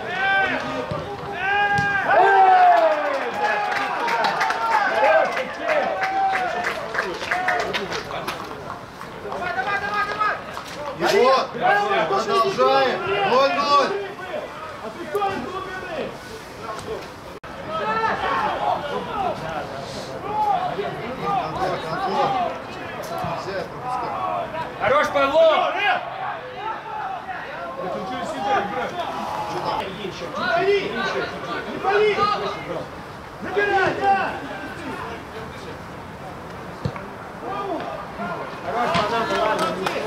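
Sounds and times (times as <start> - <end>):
players shouting: 0.0 - 8.2, 9.2 - 35.6, 36.8 - 40.0.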